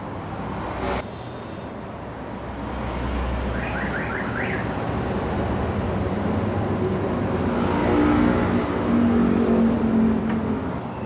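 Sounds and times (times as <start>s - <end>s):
rushing background noise: 0.0s - 11.0s.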